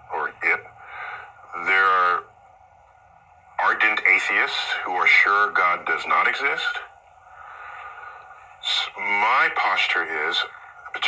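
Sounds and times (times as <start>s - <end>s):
faint steady hiss: 0.0s - 11.0s
man breathing in: 0.8s - 1.4s, 7.2s - 8.5s.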